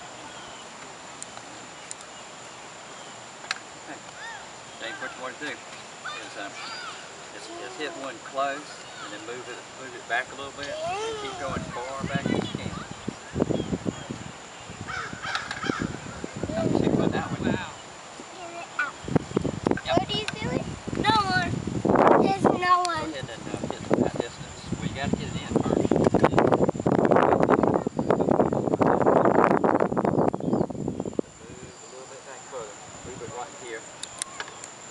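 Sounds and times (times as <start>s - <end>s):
soft voices: 3.9s - 13.1s
harsh bird call: 6.0s - 8.0s
wind buffeting microphone: 10.5s - 31.8s, 32.8s - 33.6s.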